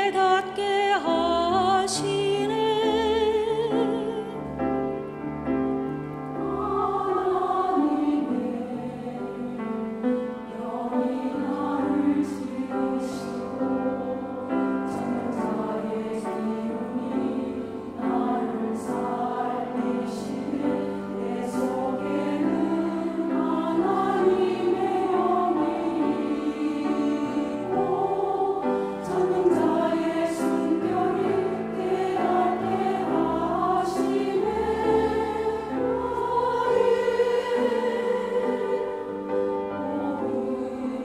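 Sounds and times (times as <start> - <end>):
church choir singing: 0.0 - 41.0.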